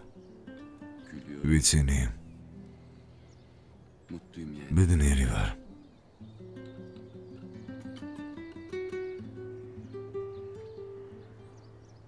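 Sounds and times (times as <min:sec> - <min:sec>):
plucked string melody: 0:00.0 - 0:01.4, 0:05.6 - 0:12.0.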